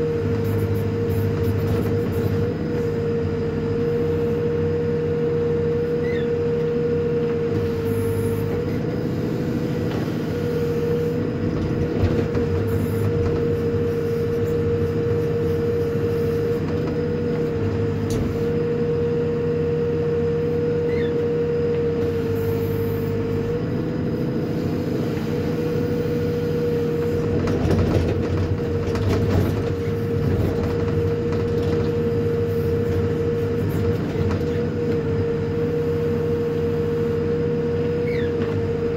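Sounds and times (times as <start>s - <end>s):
diesel engine drone with whine: 0.0s - 38.9s.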